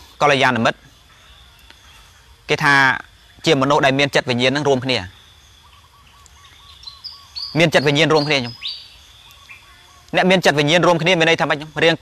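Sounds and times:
small birds chirping: 0.0 - 12.0
man speaking: 0.2 - 0.8, 7.5 - 8.6, 10.1 - 12.0.

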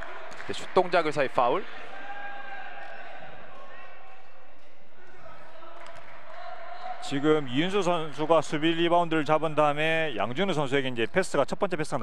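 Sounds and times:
gymnasium ambience: 0.0 - 12.0.

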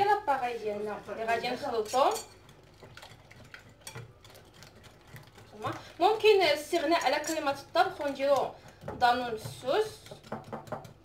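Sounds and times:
fork stirring in a bowl: 1.6 - 11.0.

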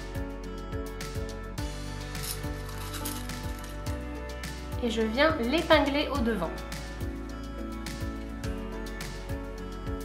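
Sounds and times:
instrumental music with steady beat: 0.0 - 4.9, 6.6 - 10.0.

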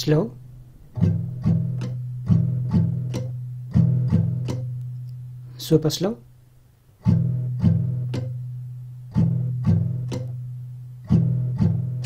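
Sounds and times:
acoustic guitar strumming: 0.4 - 5.6, 6.9 - 12.0.

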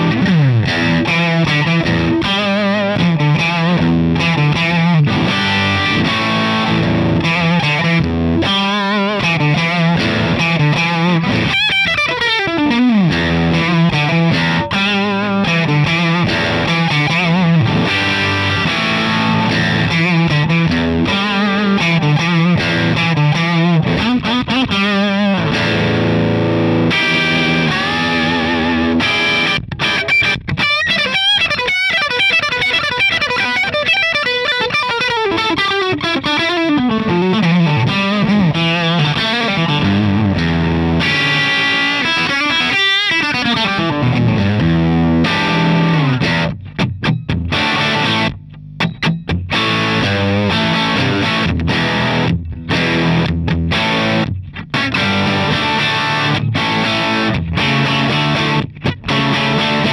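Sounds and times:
overdriven electric guitar: 0.0 - 59.9.

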